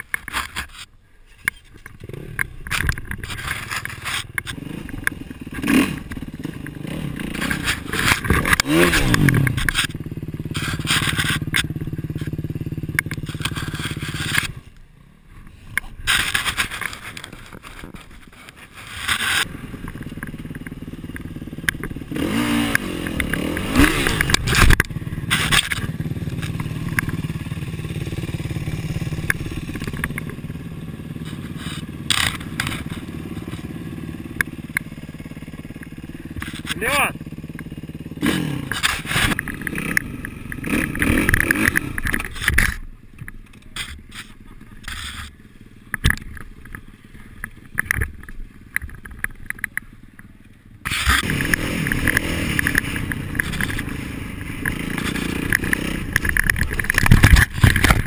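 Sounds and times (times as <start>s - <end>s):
motocross engine idling and revving: 1.5s - 58.0s
clicks: 45.9s - 58.0s.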